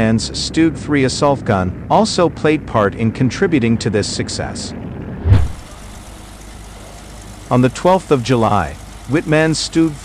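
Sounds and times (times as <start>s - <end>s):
vehicle engine rumble: 0.6s - 9.2s
loud low thump: 5.1s - 5.7s.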